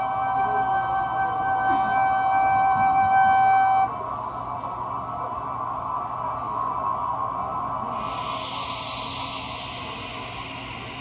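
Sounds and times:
flute holding a note: 0.0s - 4.1s.

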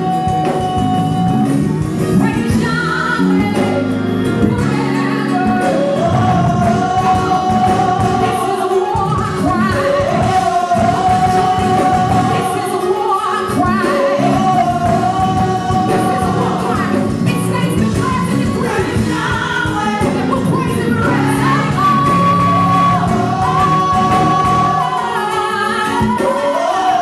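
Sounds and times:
backing vocalists: 0.0s - 27.0s
band playing: 0.0s - 27.0s.

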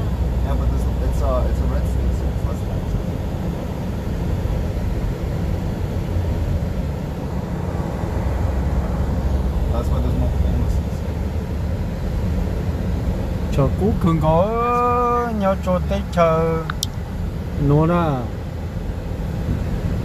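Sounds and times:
road rumble inside vehicle: 0.0s - 20.0s
vehicle engine noise: 0.0s - 20.0s.

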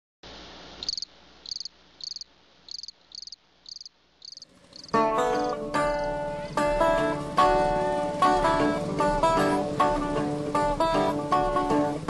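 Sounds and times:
faint hiss: 0.2s - 12.0s
cricket chirping: 0.8s - 6.1s
plucked-string blues music: 4.9s - 12.0s.

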